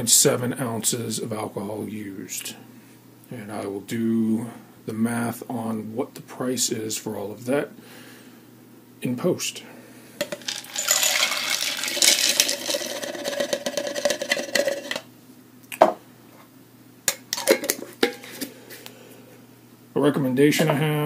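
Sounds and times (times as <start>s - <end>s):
pellets clattering into glass jar: 10.2s - 15.0s
knocks of cup and jar handled: 15.8s - 16.0s.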